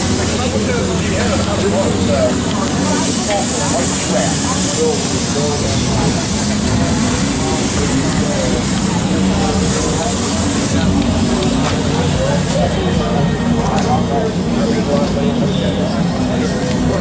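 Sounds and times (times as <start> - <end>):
car engine idling: 0.0 - 17.0
people talking: 0.0 - 17.0.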